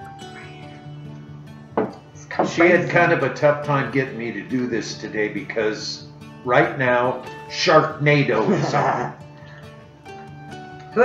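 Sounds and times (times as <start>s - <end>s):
quiet background music: 0.0s - 11.0s
mug set down on table: 1.8s - 2.6s.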